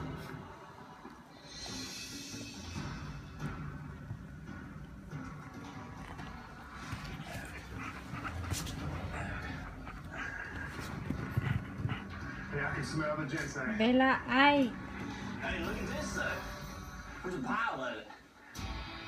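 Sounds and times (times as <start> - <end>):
television background music: 0.0 - 19.0.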